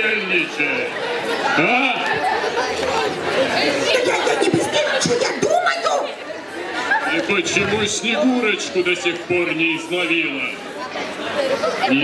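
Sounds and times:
children's voices: 0.0s - 12.0s
people chattering: 0.0s - 12.0s.

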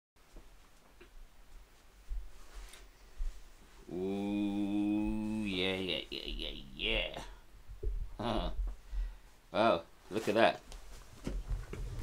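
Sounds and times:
man holding long low note: 3.9s - 6.6s.

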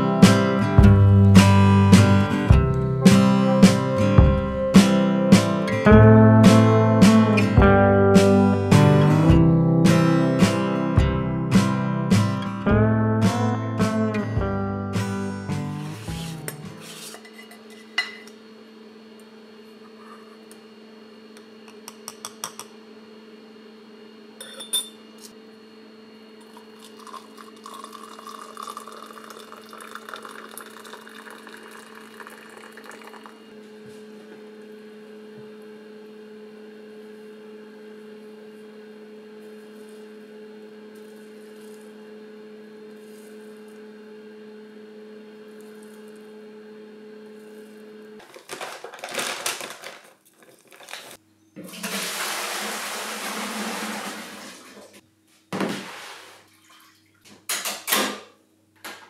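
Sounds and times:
low electrical hum: 14.0s - 59.0s
water poured into a mug: 26.4s - 33.4s, 56.5s - 57.2s
flour pouring into a plastic tub: 27.0s - 33.2s, 51.8s - 54.8s, 55.6s - 56.5s.

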